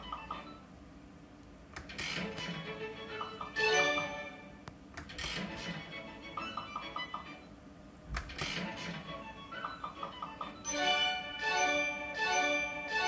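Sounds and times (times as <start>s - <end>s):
slot machine game music: 2.2s - 4.6s, 8.5s - 13.0s.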